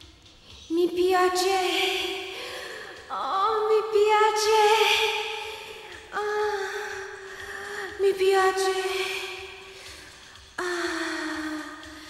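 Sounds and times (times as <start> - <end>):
woman gasping: 2.3 - 3.1.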